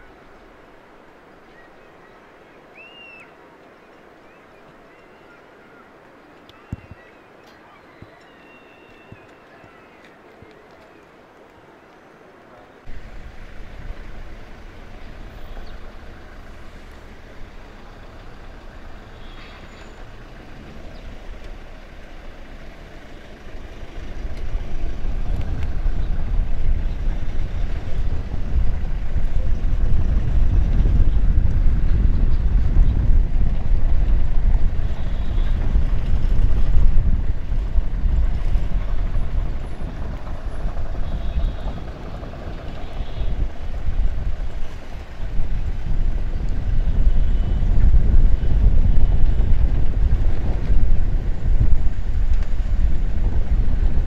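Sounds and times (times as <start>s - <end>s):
vehicles on dirt road: 0.0s - 54.0s
heavy low rumble: 12.9s - 54.0s.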